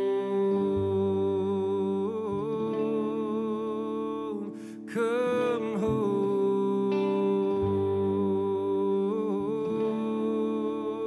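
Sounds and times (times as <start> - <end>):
guitar keyboard and bass chords: 0.0 - 11.0.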